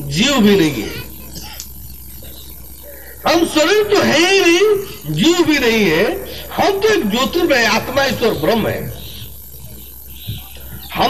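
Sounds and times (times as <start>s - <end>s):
sound system hum and hiss: 0.0s - 11.0s.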